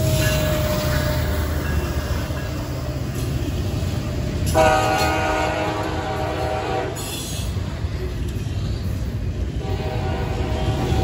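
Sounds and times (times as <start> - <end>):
locomotive air horn: 0.0 - 1.6, 4.5 - 7.4, 9.6 - 11.0
rail cars rumbling past: 0.0 - 11.0.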